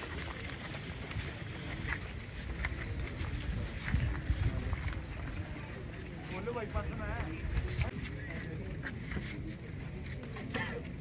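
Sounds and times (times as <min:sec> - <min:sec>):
wind buffeting microphone: 0:00.0 - 0:08.0
crowd chatter: 0:00.0 - 0:11.0.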